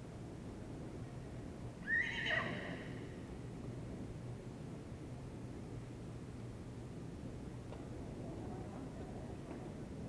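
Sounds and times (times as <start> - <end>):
horse whinnying: 1.8 - 2.9.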